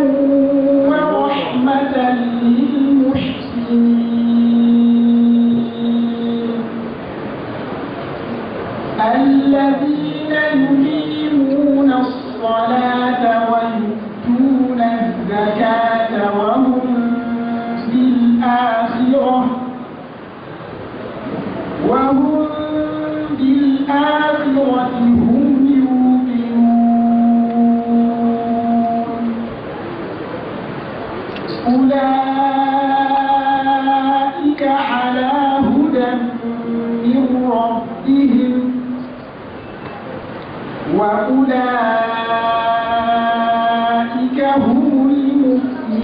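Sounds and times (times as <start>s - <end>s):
man reciting melodically: 0.0s - 6.8s, 9.0s - 19.8s, 21.8s - 29.5s, 31.5s - 39.1s, 40.9s - 46.0s
man reciting long held note: 0.0s - 6.9s, 9.0s - 19.8s.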